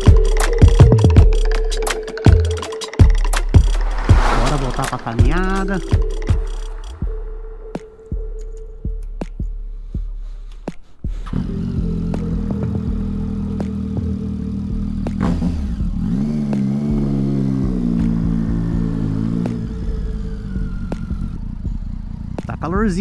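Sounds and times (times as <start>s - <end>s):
motorcycle engine starting and revving: 11.1s - 23.0s.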